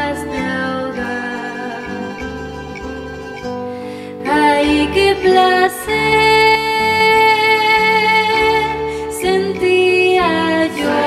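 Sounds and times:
woman singing folk song: 0.0 - 2.4, 3.8 - 11.0
plucked guitar: 0.0 - 11.0.

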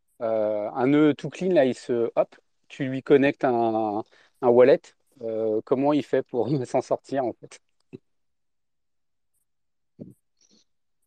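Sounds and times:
faint breathy sound: 4.0 - 4.4.

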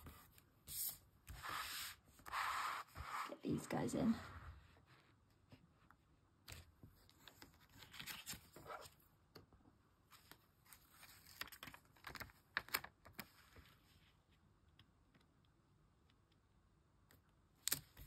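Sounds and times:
soft paper rustles and clicks: 6.4 - 9.5, 10.1 - 14.1, 17.1 - 18.0.

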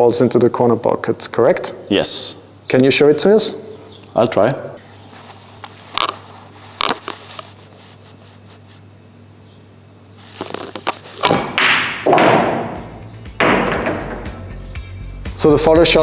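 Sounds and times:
balls dropping into pocket: 10.3 - 14.4
pool balls clicking: 10.3 - 14.4
sharp knocks: 10.5 - 14.4
cue tip striking ball: 11.2 - 14.4.

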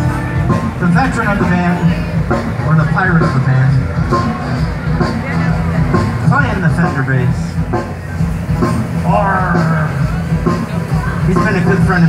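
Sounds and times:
bass line: 0.0 - 12.0
country band playing: 0.0 - 12.0
voices: 0.0 - 12.0.

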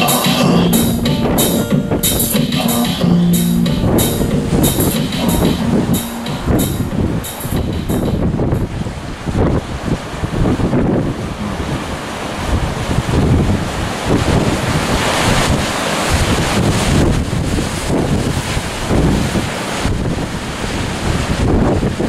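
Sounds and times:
wind buffeting microphone: 3.8 - 22.0
waves breaking on rocky shore: 8.7 - 22.0.

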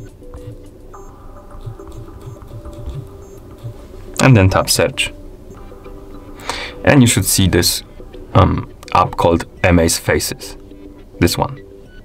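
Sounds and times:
quiet background music: 0.0 - 12.0
fingertip tapping phone screen: 1.6 - 3.8.

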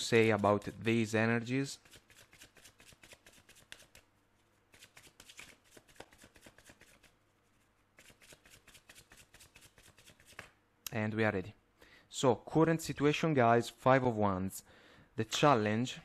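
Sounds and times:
cards being shuffled: 1.8 - 4.1, 4.7 - 7.2, 8.0 - 10.6.

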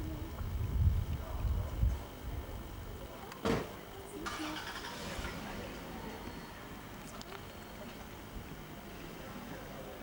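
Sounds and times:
steady outdoor noise: 0.0 - 10.0
indistinct background voices: 1.1 - 10.0.

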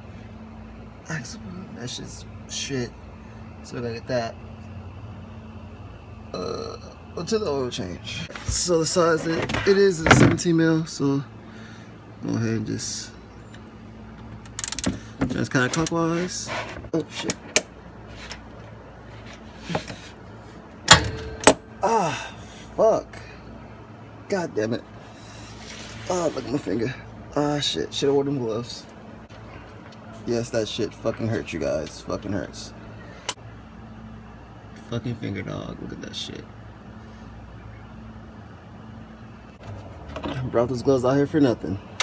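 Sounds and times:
low mechanical hum: 0.0 - 42.0
ratchet wrench clicking: 14.4 - 15.0.

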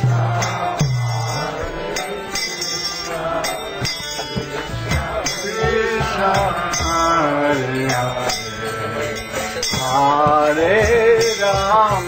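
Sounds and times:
accompanying music: 0.0 - 12.0
metallic cymbal strikes: 0.0 - 12.0
person singing a chant: 0.0 - 12.0.

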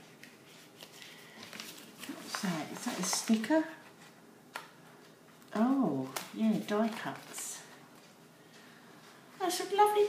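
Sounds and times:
paper pages rustling: 0.0 - 9.6.

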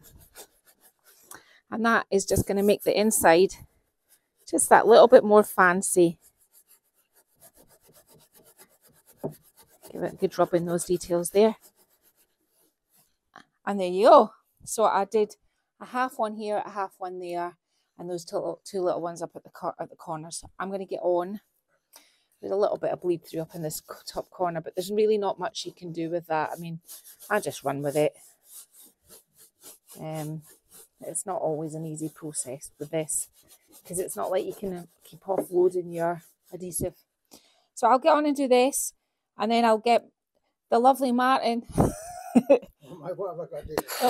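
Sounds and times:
brush scrubbing: 0.0 - 1.3, 2.2 - 3.4, 6.1 - 13.2, 23.2 - 36.8.

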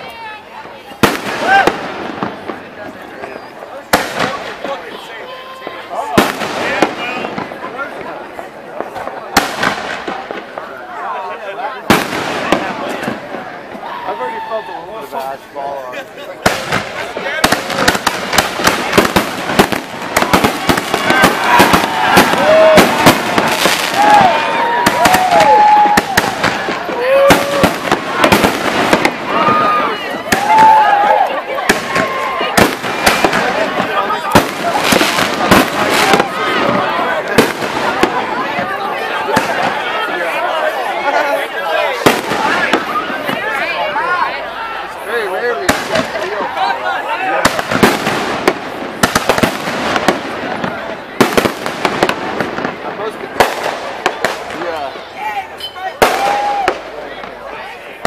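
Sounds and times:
fireworks bangs and crackles: 0.0 - 58.0.

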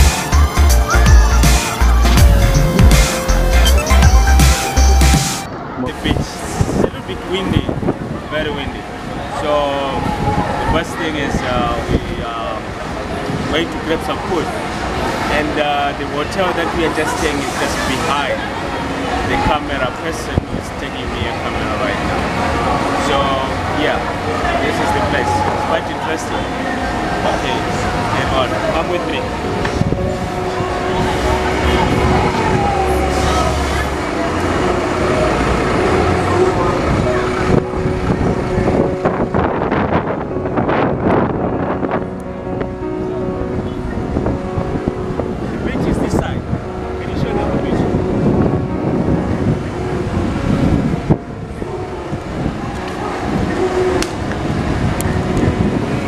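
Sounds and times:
bus and car engines running: 0.0 - 56.0
people talking: 5.8 - 12.7, 13.5 - 14.6, 15.3 - 22.0, 22.9 - 29.4, 45.6 - 46.4, 47.0 - 48.0.

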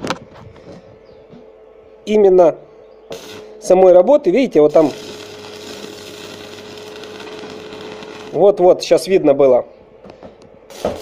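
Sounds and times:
steady hum: 0.0 - 11.0
welding arc sizzling: 3.1 - 8.8, 10.7 - 11.0.

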